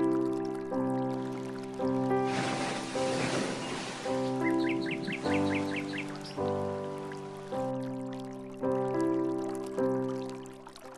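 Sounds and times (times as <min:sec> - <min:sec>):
calm background music chords: 0:00.0 - 0:10.9
rain-like hiss: 0:01.0 - 0:08.0
high bird-like chirps: 0:03.1 - 0:06.6.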